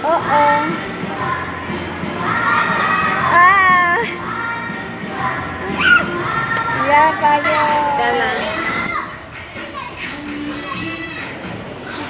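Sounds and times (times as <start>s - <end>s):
hubbub of many voices: 0.0s - 12.0s
children shouting: 2.1s - 4.6s, 5.6s - 12.0s
long high-pitched shouts: 5.8s - 6.2s.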